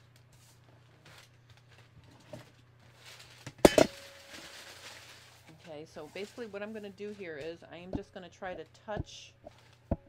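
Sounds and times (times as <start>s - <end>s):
paper rustling: 2.8s - 7.6s.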